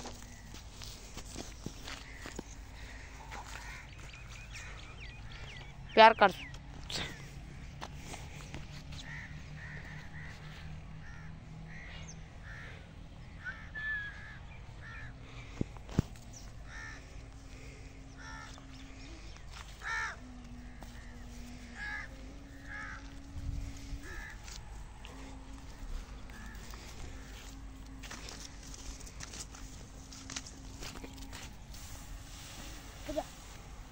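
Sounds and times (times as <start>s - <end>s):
birds calling: 0.0s - 33.8s
low hum: 0.0s - 33.9s.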